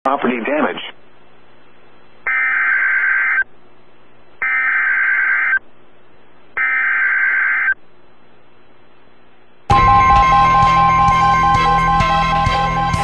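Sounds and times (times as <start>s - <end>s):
radio static hiss: 0.1s - 8.7s.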